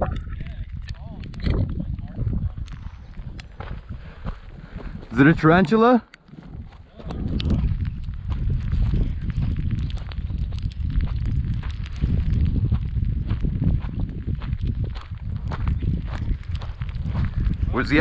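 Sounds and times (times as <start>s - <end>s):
low wind noise on microphone: 0.0s - 18.0s
footsteps crunching on gravel: 2.5s - 18.0s.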